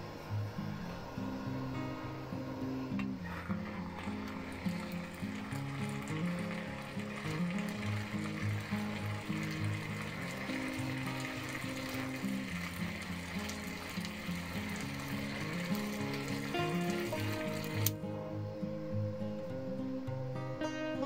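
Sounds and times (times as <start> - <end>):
background music with low notes: 0.0 - 21.0
water boiling with sizzling hiss: 0.0 - 21.0.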